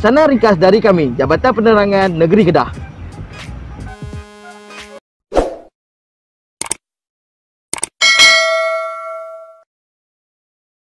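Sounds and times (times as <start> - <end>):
bell ringing: 8.0 - 9.7.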